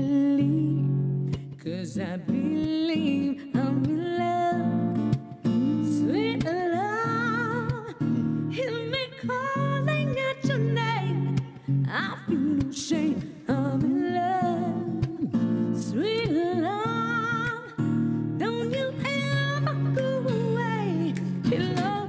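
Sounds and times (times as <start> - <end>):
guitar accompaniment: 0.0 - 22.0
woman singing soul ballad: 0.0 - 22.0.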